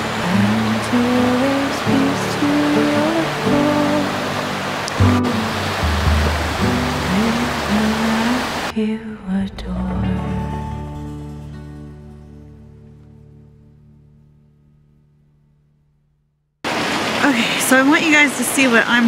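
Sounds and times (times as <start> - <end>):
water rushing over rocks: 0.0 - 8.7, 16.7 - 19.0
slow background music: 0.0 - 14.6.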